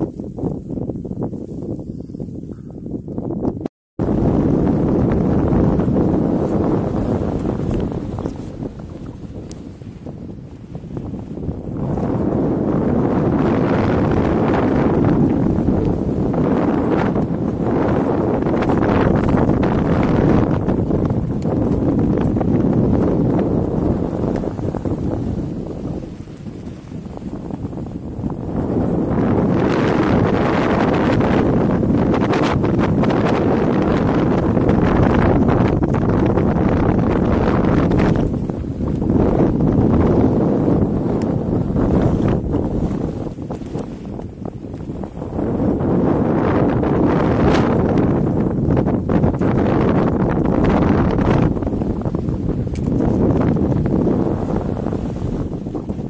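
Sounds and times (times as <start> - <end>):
strong gusting wind buffeting microphone: 0.0 - 56.0.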